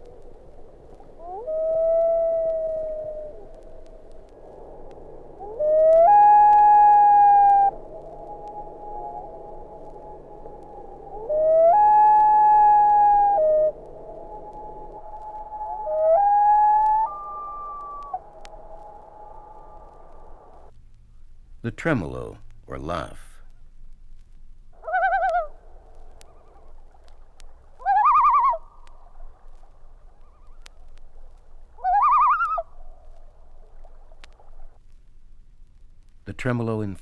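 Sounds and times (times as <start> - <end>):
loon wail calls: 0.9 - 20.6, 24.8 - 25.6, 27.8 - 28.9, 31.8 - 32.8.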